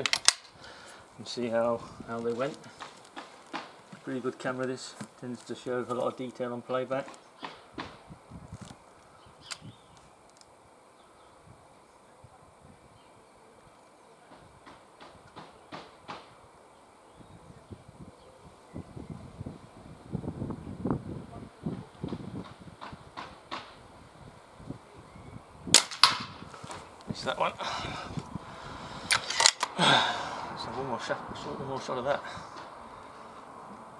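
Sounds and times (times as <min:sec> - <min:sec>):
air rifle shot: 0:25.7 - 0:26.4.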